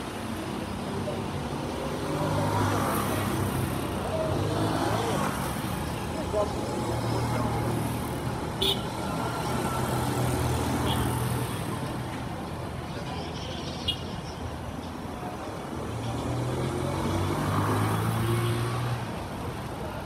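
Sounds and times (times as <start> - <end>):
people's voices: 0.2 - 20.0.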